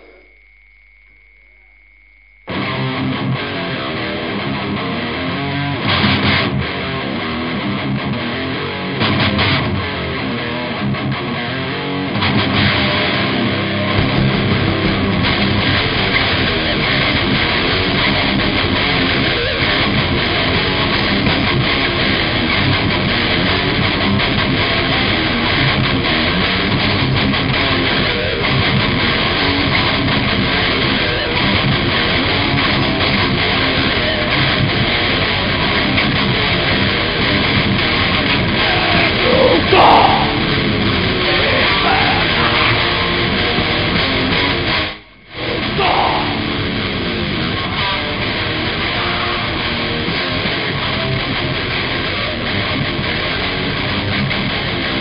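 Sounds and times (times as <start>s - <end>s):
distorted electric guitar: 0.0s - 0.5s, 1.6s - 55.0s
drums: 12.2s - 55.0s.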